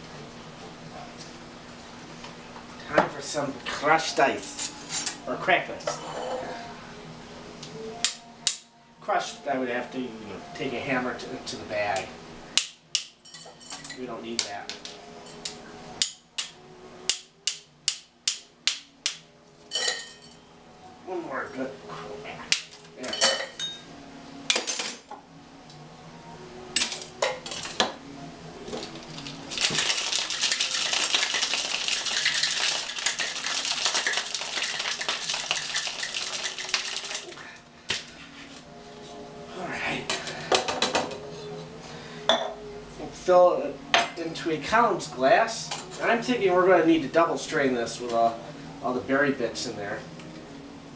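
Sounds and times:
ice clinking in metal tin: 28.8 - 37.4
cocktail shaker rattling with ice: 28.9 - 37.4.

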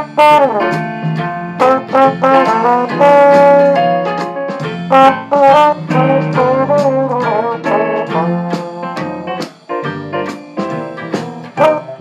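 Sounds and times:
valve trombone jazz melody: 0.0 - 12.0.

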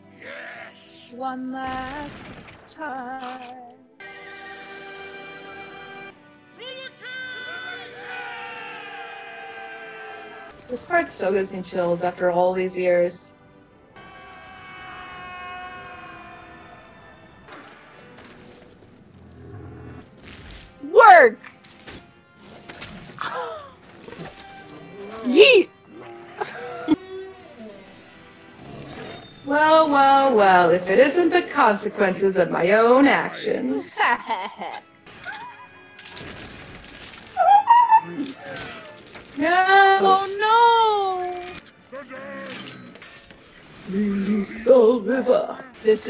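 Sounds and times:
crashing and smashing effects: 1.7 - 2.9, 36.0 - 37.4
orchestral music: 3.9 - 46.0
loud cry falling in pitch: 7.7 - 10.5, 14.0 - 17.1.

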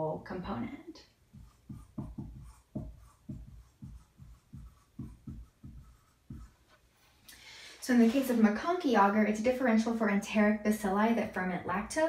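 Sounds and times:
marker writing on whiteboard: 1.2 - 6.9.

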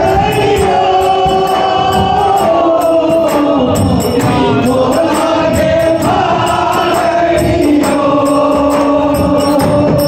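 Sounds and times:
frame drums beating: 0.0 - 10.0
man singing into a microphone: 0.0 - 10.0
voices singing along: 0.0 - 10.0.

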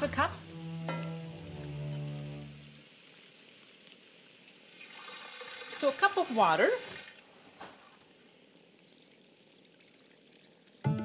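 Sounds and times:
faint hissing sizzle: 0.0 - 11.0.

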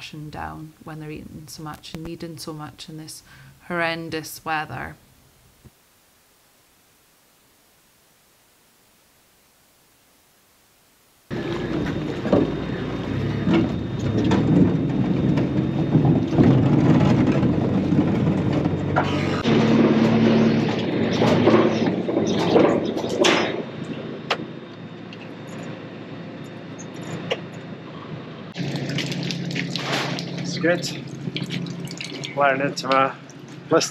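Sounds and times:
tractor engine running in cab: 11.3 - 31.4
knocks and rattles: 13.3 - 19.1.

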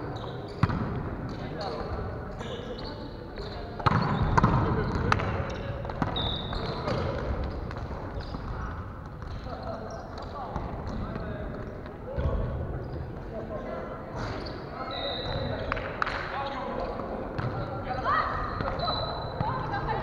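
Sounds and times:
sneakers squeaking on floor: 0.0 - 15.8, 16.4 - 20.0
volleyball smacks and bounces: 3.8 - 6.2.

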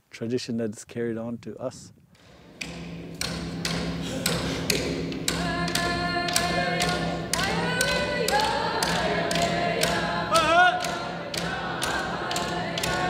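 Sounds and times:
frame drums struck with sticks: 2.3 - 13.0
group of singers: 4.0 - 13.0.

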